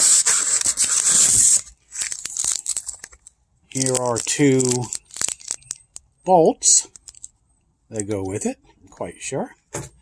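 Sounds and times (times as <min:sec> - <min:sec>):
plastic wrapping rustling: 0:00.0 - 0:06.0.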